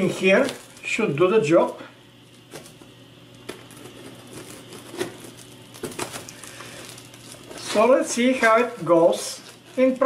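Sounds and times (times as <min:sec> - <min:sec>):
scissors cutting plastic wrap: 0:00.0 - 0:01.0, 0:03.4 - 0:10.0.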